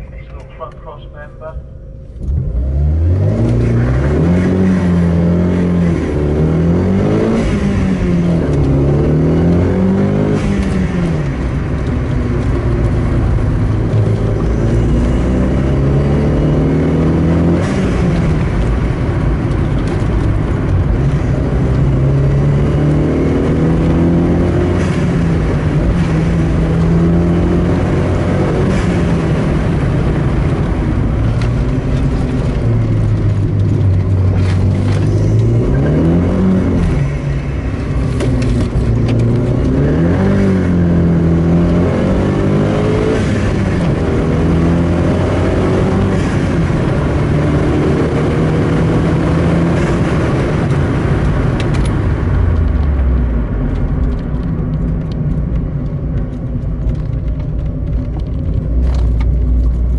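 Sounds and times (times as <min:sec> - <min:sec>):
car engine accelerating hard: 0:02.0 - 0:59.9.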